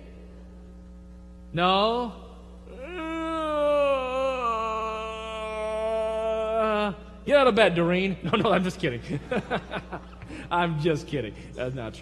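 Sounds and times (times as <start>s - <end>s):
man groaning: 2.7s - 7.0s.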